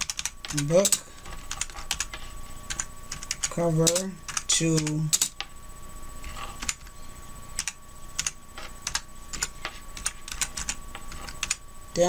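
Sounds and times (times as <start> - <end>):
computer keyboard typing: 0.0 - 5.5, 6.2 - 6.9, 7.6 - 11.6.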